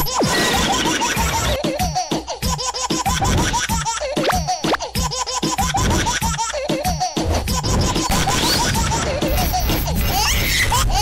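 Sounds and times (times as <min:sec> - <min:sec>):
upbeat theme music: 0:06.7 - 0:10.3.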